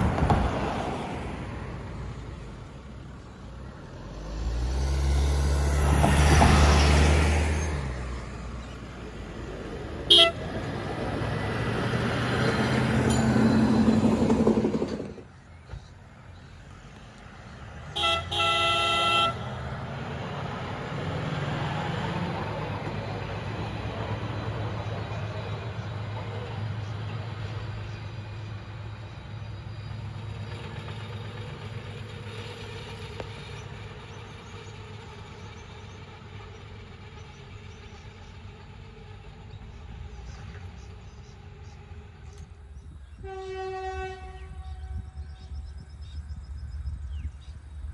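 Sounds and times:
rail vehicle engine and wheels: 0.0 - 47.9
vehicle horn toot: 10.1 - 10.5, 17.9 - 19.5, 43.1 - 45.6.

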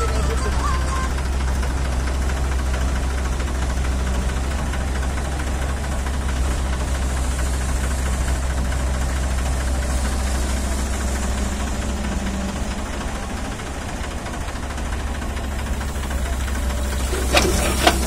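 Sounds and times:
excavator diesel engine droning: 0.0 - 18.0.

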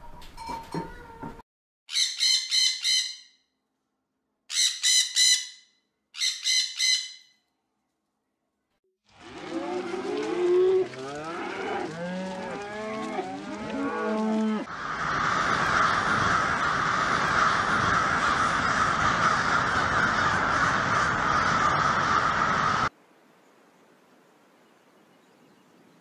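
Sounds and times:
cattle mooing: 9.2 - 14.7
dense chorus of flock calls: 14.6 - 22.9.

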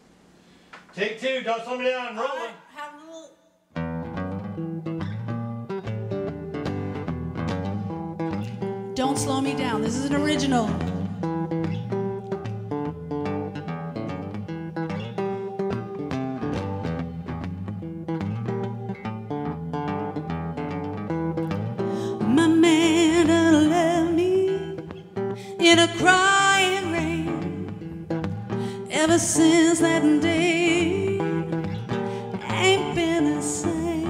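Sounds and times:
archtop guitar picking: 3.8 - 34.0
woman singing with vibrato: 9.0 - 11.3, 22.0 - 27.9, 28.6 - 34.0.

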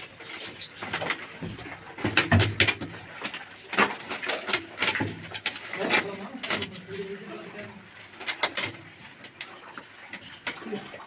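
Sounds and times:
pipe and brick knocking: 1.4 - 3.0.

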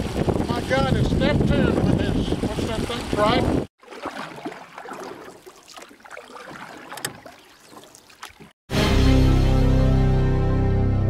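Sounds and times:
wind on microphone: 0.0 - 3.7
water sloshing and splashing: 0.0 - 8.6
background music: 8.7 - 11.0.

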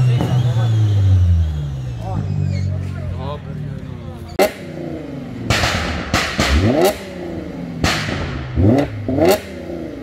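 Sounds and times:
engine revs falling: 0.0 - 10.0
car exhaust bang: 5.4 - 9.6.

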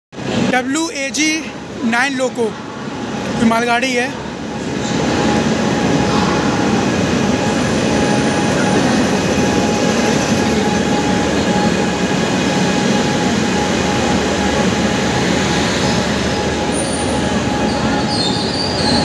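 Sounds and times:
electric locomotive passing: 0.2 - 19.0.

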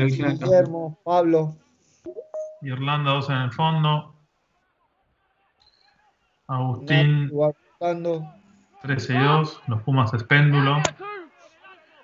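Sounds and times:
man's voice: 0.0 - 1.5, 2.6 - 4.1, 6.5 - 11.0.

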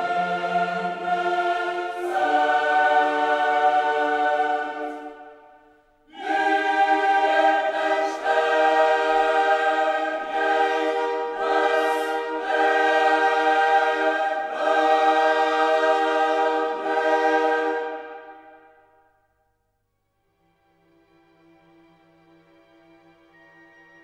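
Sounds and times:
choir singing held chords: 0.0 - 19.2.

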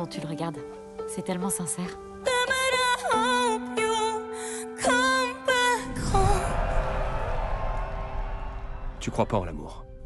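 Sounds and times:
concert crowd cheering: 6.2 - 9.4.

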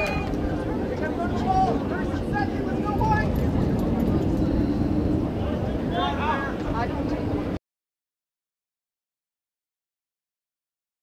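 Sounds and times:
steady low rumble: 0.0 - 7.6.

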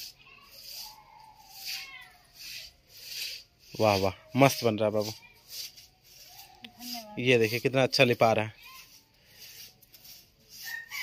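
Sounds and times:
broom swishing through wet slurry: 0.0 - 11.0.

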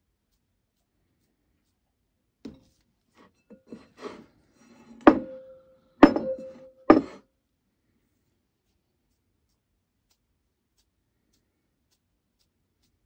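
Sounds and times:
glass bowl knocking: 5.0 - 7.2.

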